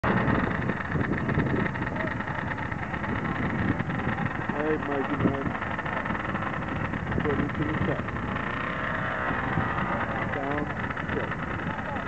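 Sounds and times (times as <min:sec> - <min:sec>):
snowmobile engines running: 0:00.0 - 0:12.0
people talking: 0:01.2 - 0:08.1, 0:09.8 - 0:12.0.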